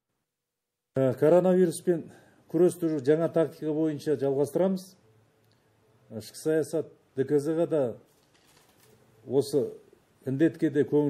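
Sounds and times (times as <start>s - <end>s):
man speaking: 1.0s - 5.0s, 6.1s - 8.1s, 9.2s - 11.0s.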